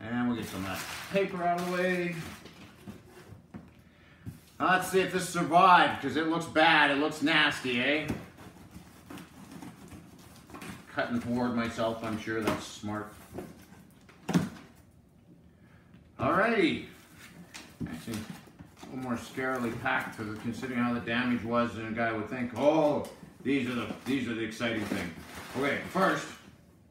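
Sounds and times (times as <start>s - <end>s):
faint room sound: 0.0s - 26.9s
paper and cardboard handling: 0.2s - 3.5s, 7.3s - 14.8s, 16.9s - 26.5s.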